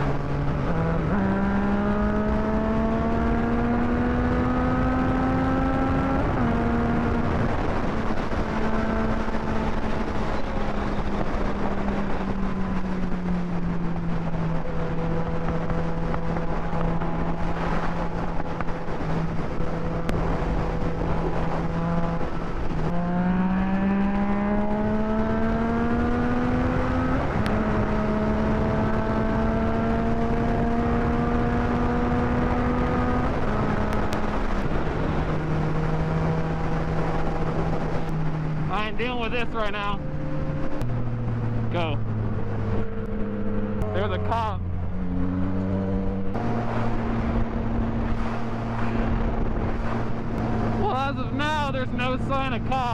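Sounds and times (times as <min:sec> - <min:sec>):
motorcycle engine: 0:00.0 - 0:52.9
wind noise: 0:00.0 - 0:52.9.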